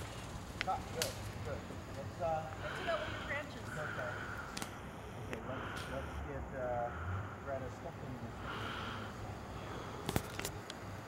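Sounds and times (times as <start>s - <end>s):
faint voices talking: 0.6s - 10.0s.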